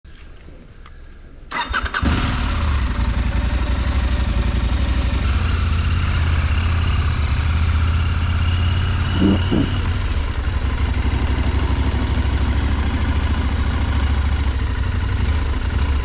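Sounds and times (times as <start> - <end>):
motorcycle starter cranking: 1.5 - 2.6
motorcycle engine running: 1.6 - 16.0.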